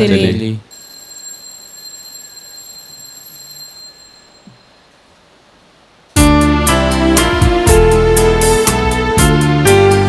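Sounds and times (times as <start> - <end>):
low room noise: 0.0 - 9.1
faint high ringing tone: 0.6 - 5.4.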